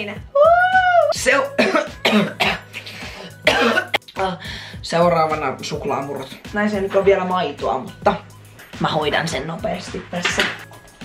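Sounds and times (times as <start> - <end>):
faint background music: 0.0 - 11.0
person coughing: 1.5 - 4.1.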